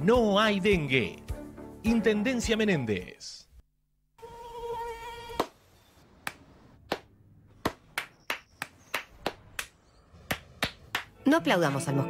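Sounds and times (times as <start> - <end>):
mosquito whine: 4.2 - 5.4
hand claps: 6.2 - 11.2.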